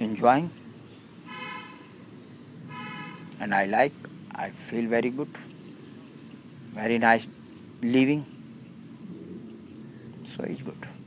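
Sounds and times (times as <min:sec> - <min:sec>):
faint vehicle horn toots: 0:01.3 - 0:01.9, 0:02.7 - 0:03.2.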